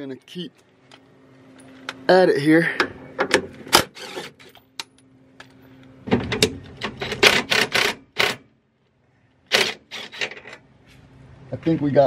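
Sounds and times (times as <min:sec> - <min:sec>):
drill clicking and rattling: 0:03.7 - 0:04.5, 0:06.9 - 0:08.4, 0:09.5 - 0:10.4
drill motor whir: 0:03.8 - 0:04.5.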